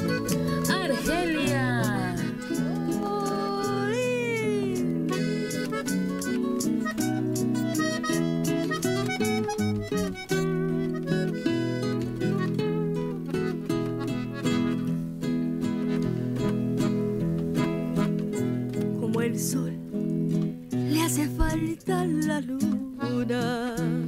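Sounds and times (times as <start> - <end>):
button accordion chords: 0.0 - 15.0, 15.6 - 18.6, 23.0 - 24.0
acoustic guitars strumming: 0.0 - 24.0.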